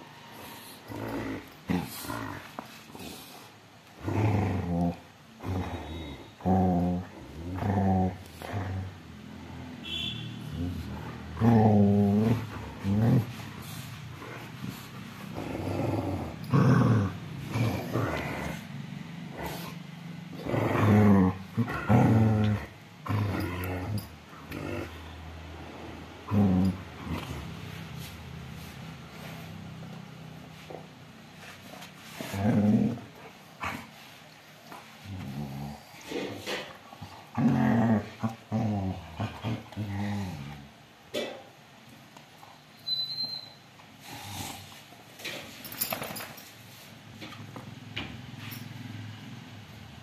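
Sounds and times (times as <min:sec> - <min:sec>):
dogs growling: 0:00.4 - 0:09.8, 0:10.5 - 0:27.6, 0:32.1 - 0:33.9, 0:35.0 - 0:40.8.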